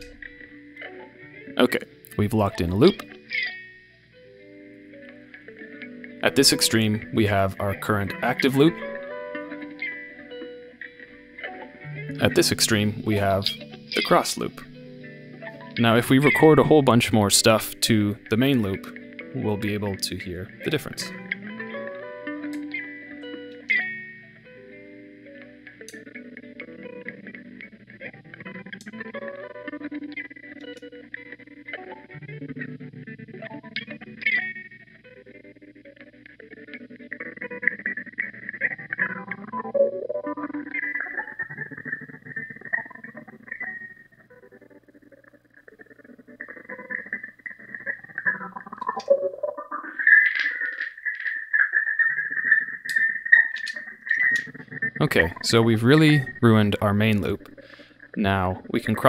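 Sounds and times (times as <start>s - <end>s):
electric guitar loop: 0.0s - 59.0s.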